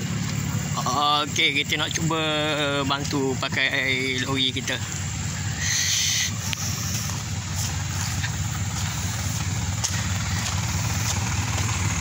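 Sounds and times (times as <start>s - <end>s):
diesel truck engine rumbling: 0.0s - 12.0s.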